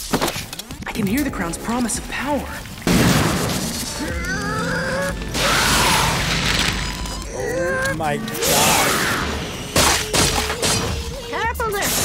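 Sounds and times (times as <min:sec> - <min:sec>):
cartoon ice shattering crashes: 0:02.9 - 0:04.0
rising and falling cry: 0:04.0 - 0:09.8.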